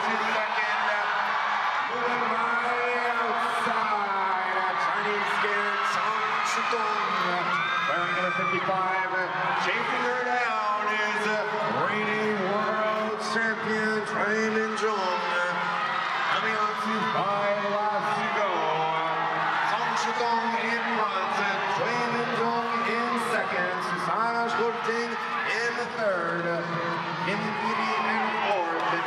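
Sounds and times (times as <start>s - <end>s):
man commentating: 0.0s - 29.0s.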